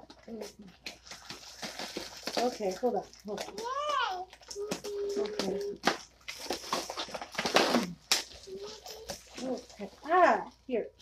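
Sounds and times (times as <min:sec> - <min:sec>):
cardboard and plastic rustling: 0:00.0 - 0:11.0.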